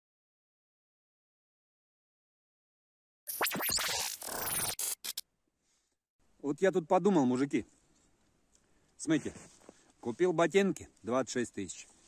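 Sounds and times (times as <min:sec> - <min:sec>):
record scratching: 0:03.3 - 0:05.2.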